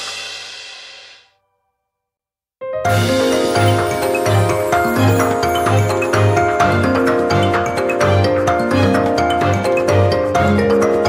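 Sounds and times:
background music: 0:02.7 - 0:11.0.

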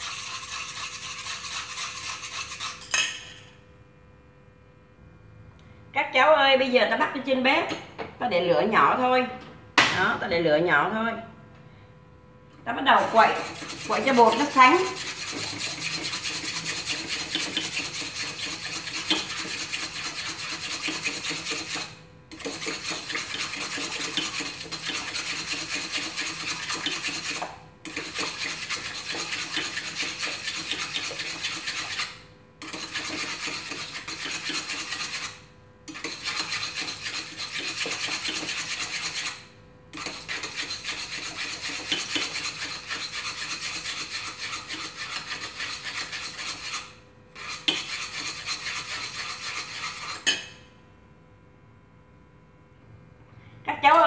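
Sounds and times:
chopsticks scraping metal pot: 0:00.0 - 0:03.2, 0:13.0 - 0:39.4, 0:40.0 - 0:50.6.

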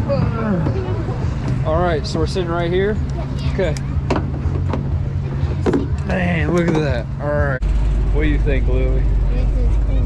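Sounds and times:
big truck engine idling: 0:00.0 - 0:10.0.

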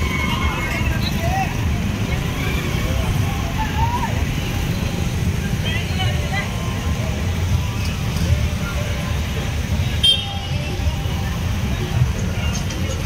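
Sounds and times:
auto-rickshaw engines rumbling: 0:00.0 - 0:13.0
faint crowd voices: 0:00.0 - 0:13.0.

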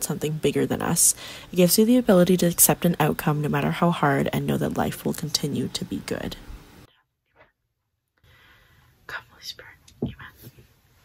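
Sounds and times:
woman whispering: 0:09.1 - 0:10.5.

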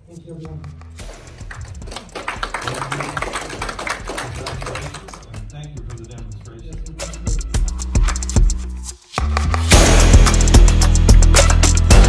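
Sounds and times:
audience applauding: 0:01.2 - 0:05.5.

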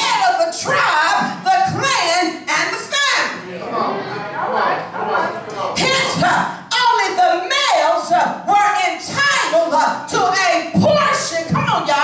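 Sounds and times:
woman preaching: 0:00.0 - 0:03.4, 0:05.8 - 0:12.0.

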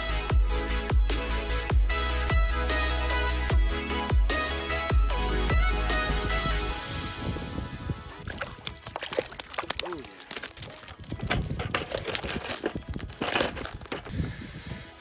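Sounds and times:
boots on crusted ice: 0:09.1 - 0:14.4
handling clicks and knocks: 0:09.3 - 0:14.1.

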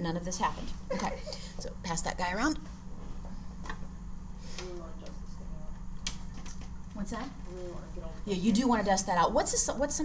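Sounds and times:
steady low room hum: 0:00.0 - 0:10.0.

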